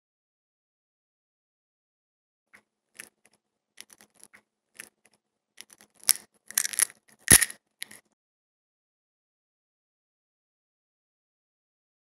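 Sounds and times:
eggshell crackling under fingers: 3.0s - 8.0s.

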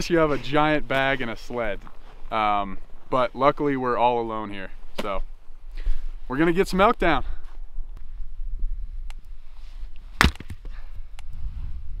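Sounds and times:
hatchet striking wood: 10.2s - 10.6s.

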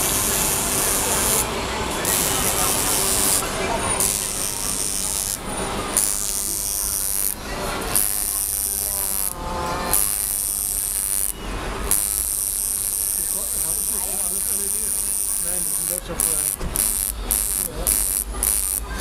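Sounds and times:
indistinct voices: 0.0s - 19.0s.

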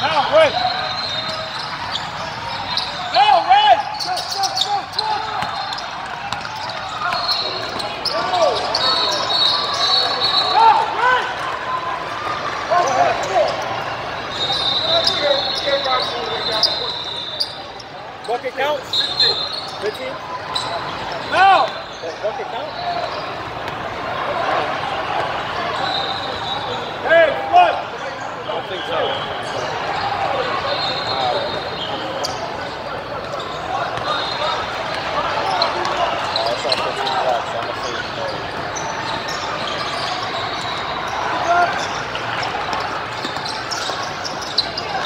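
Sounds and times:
sneakers squeaking: 0.0s - 27.1s, 27.8s - 45.0s
players calling out: 0.0s - 45.0s
basketball bouncing on court: 5.3s - 7.9s.

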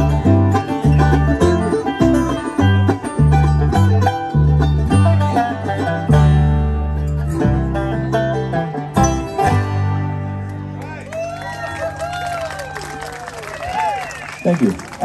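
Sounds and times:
bluegrass band playing: 0.0s - 15.0s.

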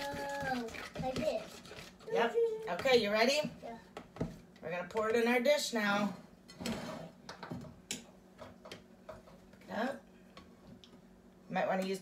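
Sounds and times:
utensil tapping mixing bowl: 0.0s - 1.9s, 2.7s - 5.2s.

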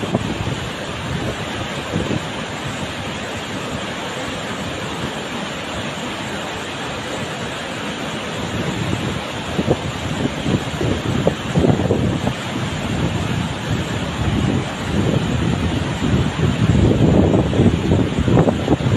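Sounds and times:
wind buffeting microphone: 0.0s - 6.5s, 7.4s - 18.9s
water cascading over boulders: 0.0s - 18.9s
waterfall rushing: 0.0s - 18.9s.

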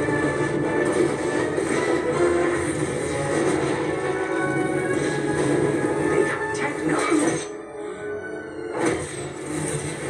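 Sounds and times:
film music score: 0.0s - 10.0s.

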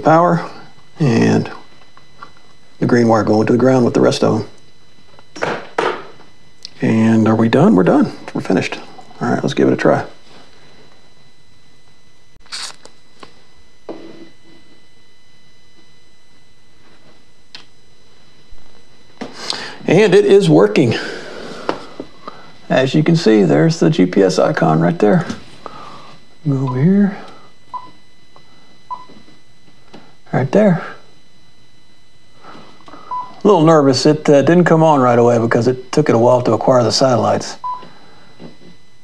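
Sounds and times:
small click: 17.5s - 17.7s.

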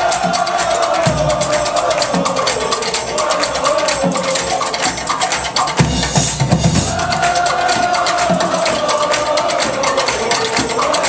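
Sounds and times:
fast drum and cymbal hits: 0.0s - 11.0s.

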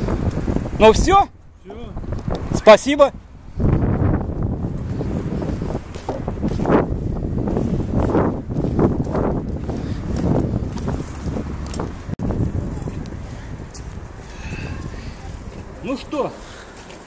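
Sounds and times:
wind buffeting microphone: 0.0s - 16.9s
faint street traffic: 0.0s - 17.0s.

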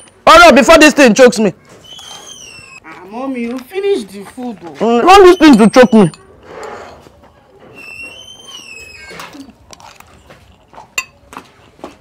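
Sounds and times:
utensil clinking against dishes: 10.9s - 11.2s.

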